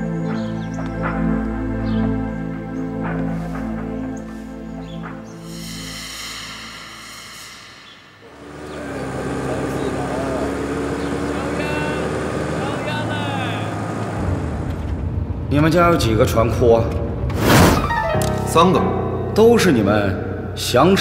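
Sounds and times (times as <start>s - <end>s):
background music: 0.0s - 21.0s
indistinct voices: 5.5s - 14.2s
car engine running: 8.3s - 15.7s.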